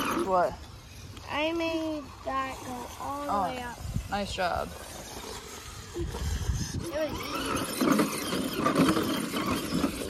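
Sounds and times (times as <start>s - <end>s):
electric motor and gearbox whining: 0.0s - 10.0s.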